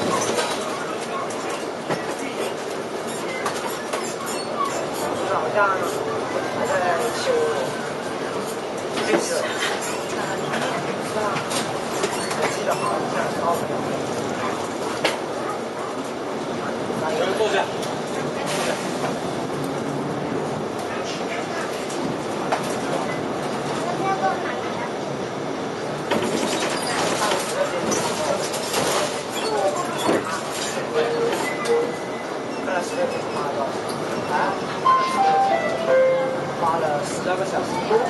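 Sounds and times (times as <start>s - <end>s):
bus engine and road noise: 0.0s - 34.8s
rattles and knocks of bus body: 26.0s - 30.8s.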